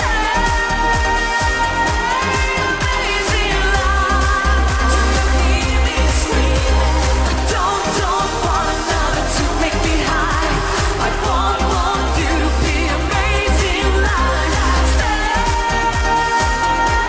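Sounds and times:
pop song with dance beat: 0:00.0 - 0:17.0
wordless singing: 0:00.0 - 0:17.0.

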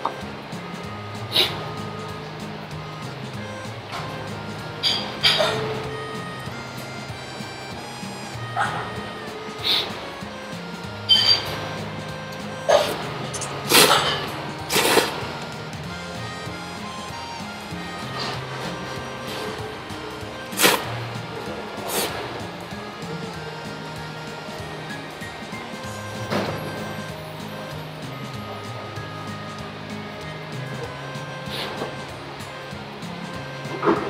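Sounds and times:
background music: 0:00.0 - 0:34.0
person slurping noodles: 0:14.7 - 0:15.2, 0:21.9 - 0:22.2.

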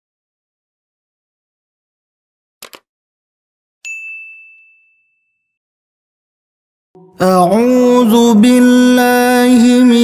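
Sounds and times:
notification bell ding: 0:03.8 - 0:05.6.

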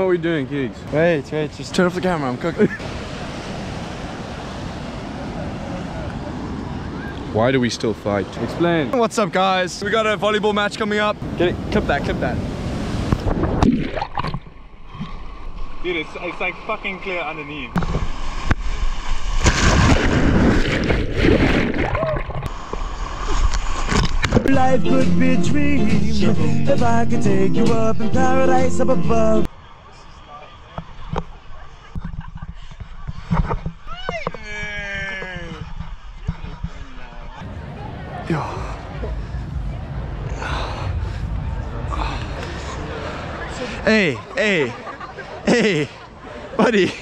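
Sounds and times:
ocean surf splashing: 0:00.9 - 0:14.3, 0:15.0 - 0:24.7, 0:37.4 - 0:47.0
wind rumble on microphone: 0:32.0 - 0:43.6.

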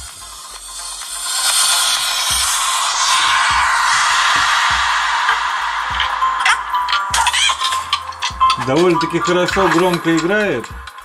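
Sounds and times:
cartoon music from phone speaker: 0:06.4 - 0:11.0.

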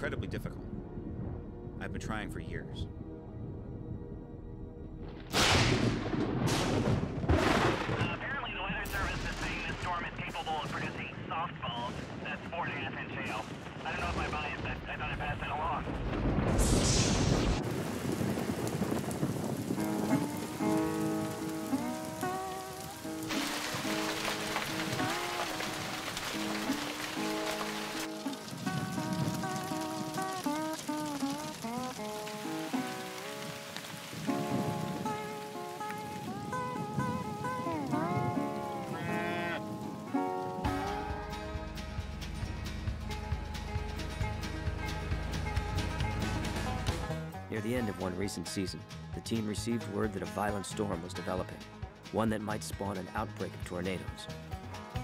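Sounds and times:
background music: 0:00.0 - 0:11.8, 0:19.8 - 0:55.0
thunder crack and rumble: 0:05.0 - 0:41.4
heavy rain: 0:05.3 - 0:47.2.

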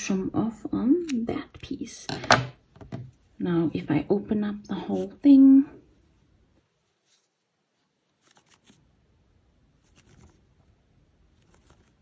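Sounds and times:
yarn rustling: 0:06.0 - 0:08.9.

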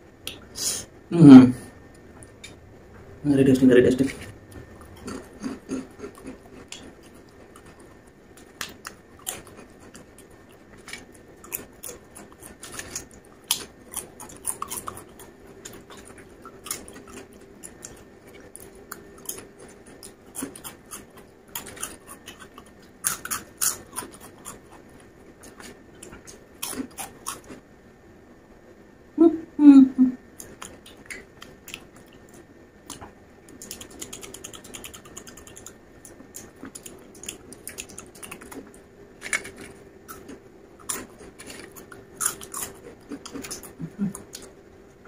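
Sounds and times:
chewing crunchy snacks: 0:03.6 - 0:27.6, 0:30.4 - 0:44.6.

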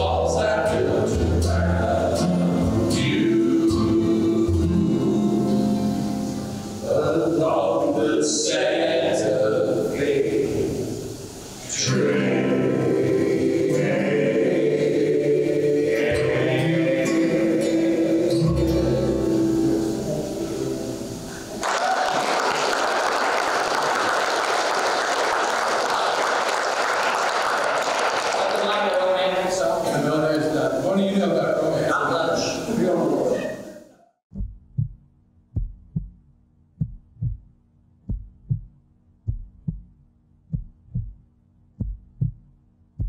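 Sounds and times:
acoustic string band chord: 0:00.0 - 0:08.0, 0:11.7 - 0:21.6
audience applause: 0:21.6 - 0:29.5
heartbeat thumps: 0:34.3 - 0:43.0.

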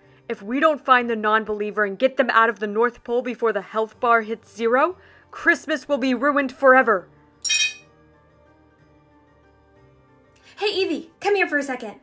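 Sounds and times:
soft background music: 0:00.0 - 0:12.0
glassy chime sound effect: 0:07.4 - 0:07.8.

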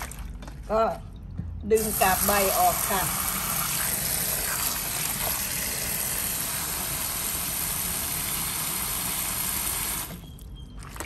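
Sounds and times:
hand sloshing water: 0:00.0 - 0:00.4
tap water running into a bowl: 0:01.8 - 0:10.2.

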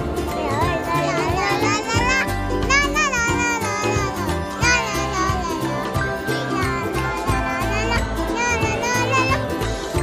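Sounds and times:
background music with bass: 0:00.0 - 0:10.0
child's high voice: 0:00.3 - 0:09.7.

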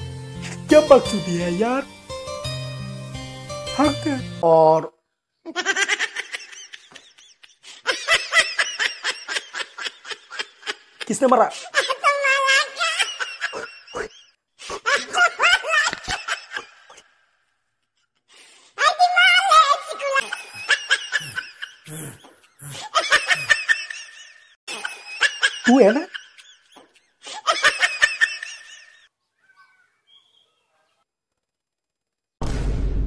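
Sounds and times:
person snickering and laughing: 0:05.5 - 0:17.1, 0:20.0 - 0:29.1
person snickering: 0:13.5 - 0:17.0, 0:20.2 - 0:24.0.

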